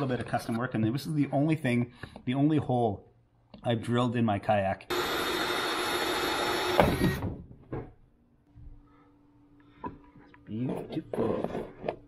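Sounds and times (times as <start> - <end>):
cordless drill boring through plastic: 4.9 - 7.4.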